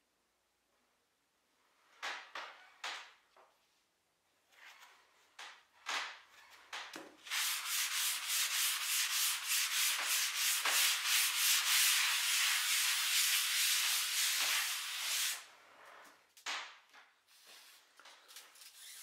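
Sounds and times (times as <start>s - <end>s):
wet sponge wiping chalkboard: 7.2s - 15.5s.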